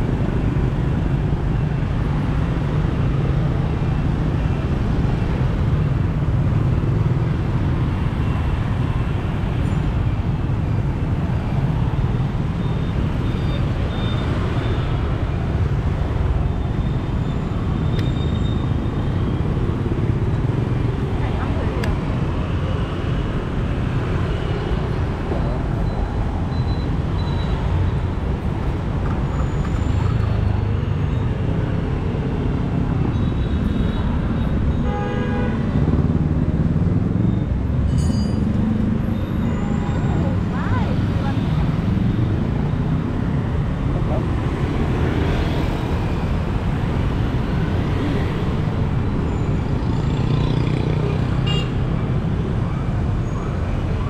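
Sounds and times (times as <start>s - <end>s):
scooters passing: 47.0s - 51.6s.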